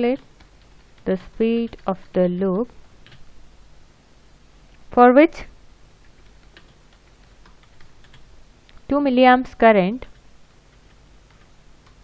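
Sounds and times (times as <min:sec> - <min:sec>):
computer keyboard keystrokes: 0:03.0 - 0:03.2, 0:06.0 - 0:08.2.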